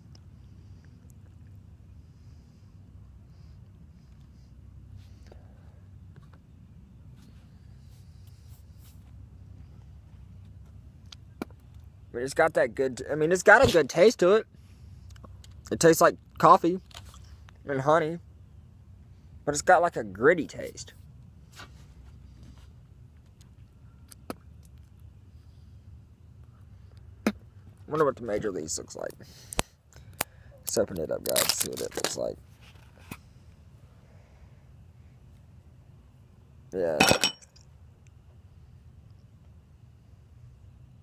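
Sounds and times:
low outdoor rumble: 0.0s - 41.0s.

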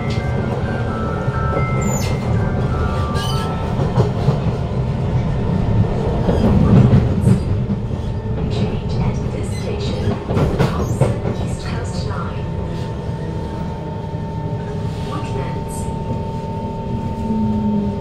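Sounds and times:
rail clicks: 0.0s - 12.4s.

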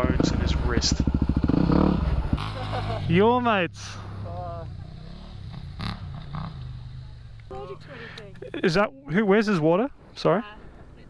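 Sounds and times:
motorcycle engine idling: 0.0s - 8.4s.

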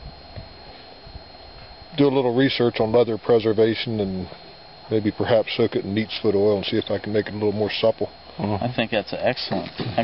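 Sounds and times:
outdoor background hiss: 0.0s - 10.0s
steady high-pitched whine: 0.0s - 10.0s.

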